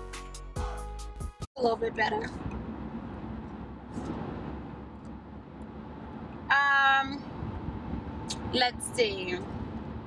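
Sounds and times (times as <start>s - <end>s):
car road and engine noise: 1.6s - 10.0s.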